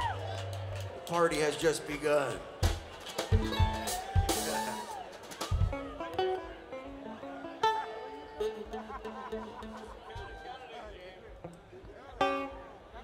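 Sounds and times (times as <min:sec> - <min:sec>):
drum hits: 0:02.6 - 0:06.0
held and sliding string notes: 0:03.3 - 0:10.3.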